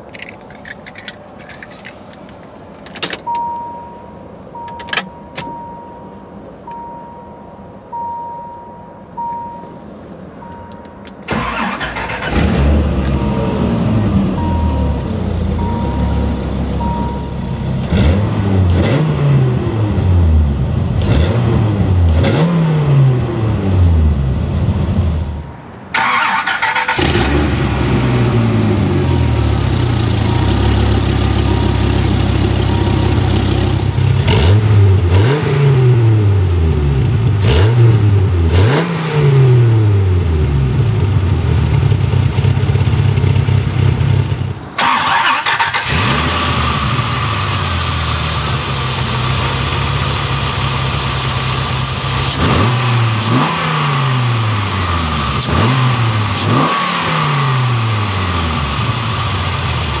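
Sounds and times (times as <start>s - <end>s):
car engine idling and revving: 3.3s - 60.0s.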